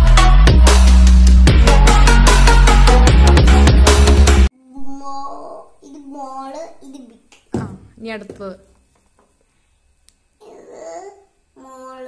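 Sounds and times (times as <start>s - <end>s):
young child grunting: 10.4s - 12.0s.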